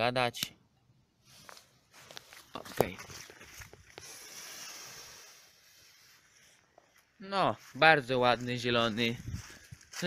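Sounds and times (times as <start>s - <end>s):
powder fizzing hiss: 4.0s - 6.2s.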